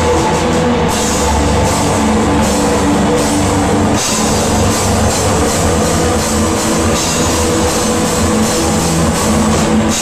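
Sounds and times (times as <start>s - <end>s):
heavy rock band playing: 0.0s - 10.0s.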